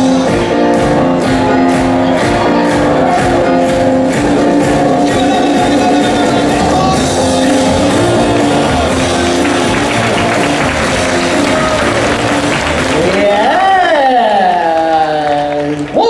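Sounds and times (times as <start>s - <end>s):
hip-hop dance music: 0.0s - 15.6s
audience applause and cheering: 0.2s - 16.0s.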